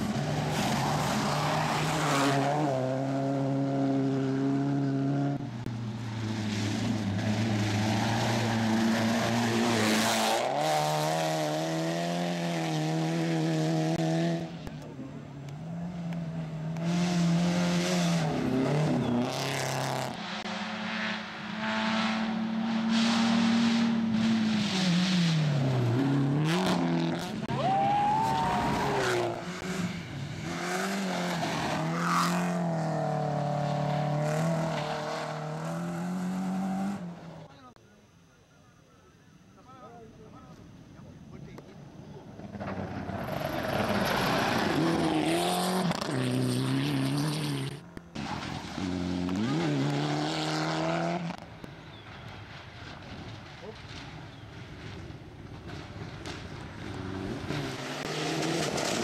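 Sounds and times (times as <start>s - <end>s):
gravel and dirt noise: 0.0s - 21.8s, 22.5s - 59.0s
rally car engines at full throttle: 0.0s - 38.2s, 40.6s - 59.0s.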